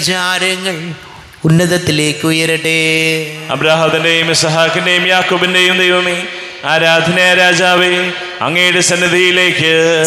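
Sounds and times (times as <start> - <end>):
man chanting into microphone: 0.0 - 10.0.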